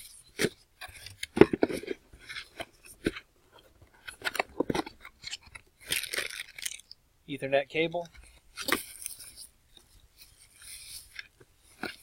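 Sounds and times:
plastic packaging crinkling: 0:04.0 - 0:07.0.

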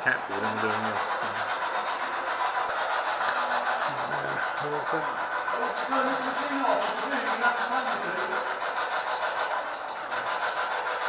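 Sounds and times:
pulsing hiss: 0:00.0 - 0:11.0.

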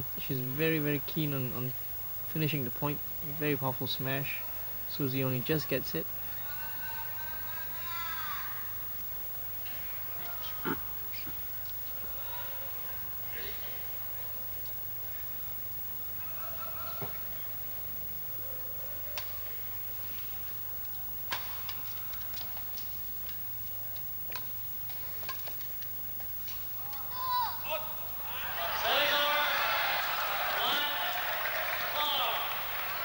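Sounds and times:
crowd yelling: 0:06.2 - 0:08.8, 0:26.8 - 0:33.0.

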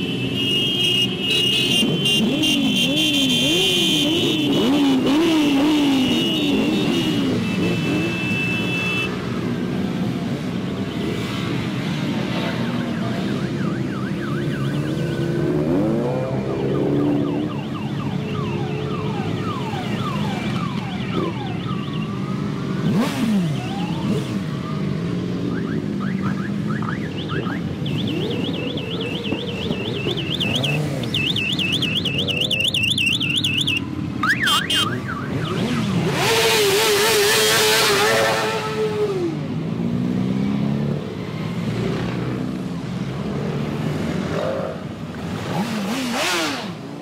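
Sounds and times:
motorcycle engines revving: 0:00.0 - 0:47.0
warbling alarm tone: 0:26.8 - 0:35.7.

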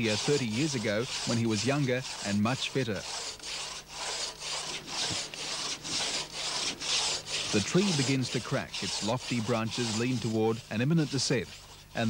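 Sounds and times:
crosscut saw rasping through wood: 0:00.0 - 0:12.0.

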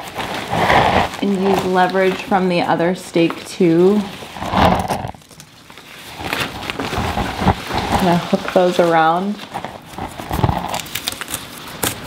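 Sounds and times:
plant tape rustling and crackling: 0:00.0 - 0:12.0.

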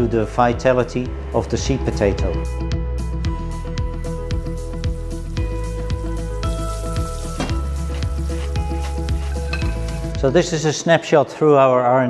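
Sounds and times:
background music with beat: 0:02.2 - 0:10.6
fries sizzling in hot oil: 0:04.4 - 0:10.1.

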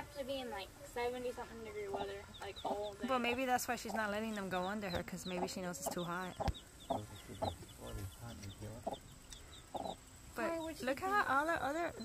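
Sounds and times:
chicks peeping: 0:00.0 - 0:12.0
hen clucking: 0:00.6 - 0:12.0.

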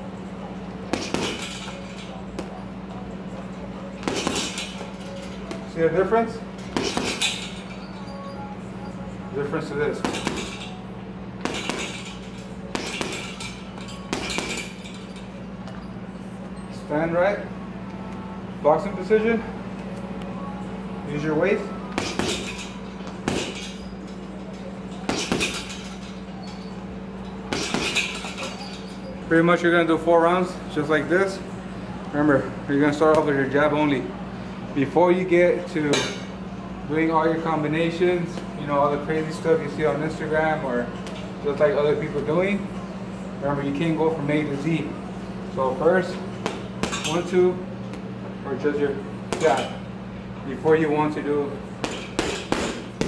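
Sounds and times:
gloved punches on heavy bag: 0:00.9 - 0:01.5, 0:04.0 - 0:04.6, 0:06.7 - 0:07.3, 0:11.4 - 0:12.0, 0:14.1 - 0:14.7, 0:22.0 - 0:22.5, 0:23.2 - 0:23.6, 0:51.8 - 0:53.0.

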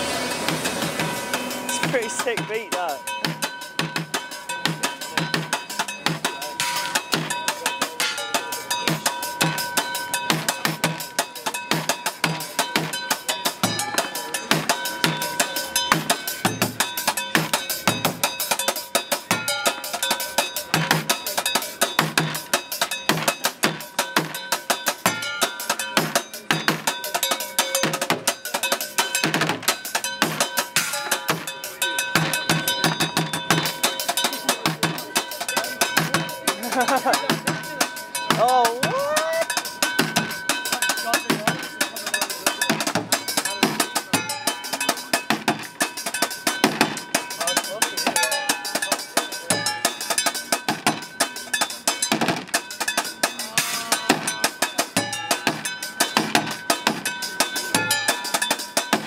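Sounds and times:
bucket drum thumps: 0:52.0 - 0:52.6.

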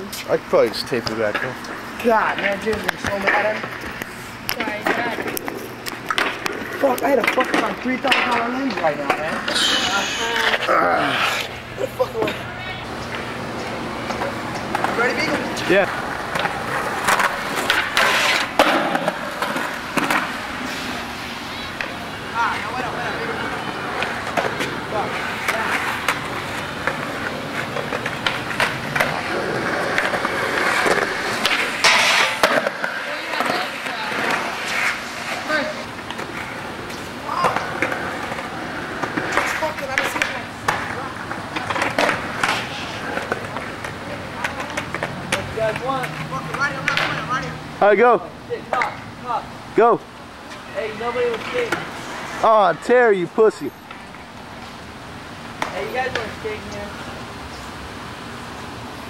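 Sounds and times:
skateboard wheels rolling on concrete: 0:00.0 - 0:59.0
skateboard clacks and impacts: 0:02.2 - 0:09.6, 0:12.2 - 0:20.6, 0:21.7 - 0:47.4.

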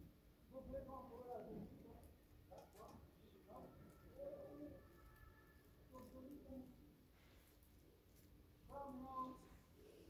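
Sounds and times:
pigeon cooing: 0:03.5 - 0:06.4.

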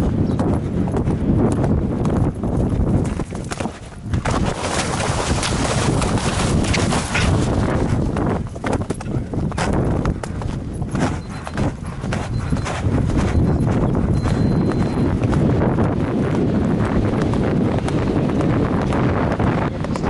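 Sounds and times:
horse hoofbeats galloping on grass: 0:00.0 - 0:20.0.

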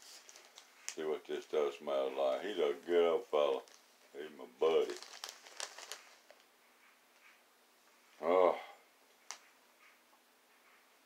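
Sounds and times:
plastic bag crinkling: 0:00.0 - 0:01.6, 0:02.2 - 0:06.5.

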